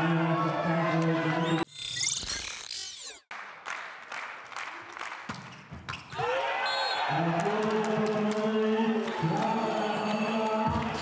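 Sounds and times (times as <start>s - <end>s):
indoor sports hall noise: 3.4s - 11.0s.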